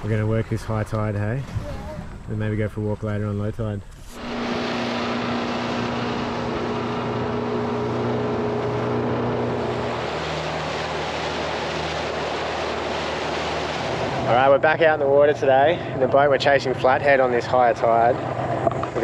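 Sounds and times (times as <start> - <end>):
wind: 0.0 - 19.0
water rushing: 2.3 - 19.0
outboard motor running: 3.9 - 19.0.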